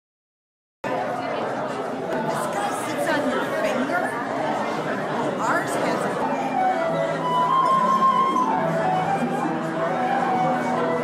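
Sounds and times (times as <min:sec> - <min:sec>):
hubbub of overlapping conversation: 0:00.8 - 0:11.0.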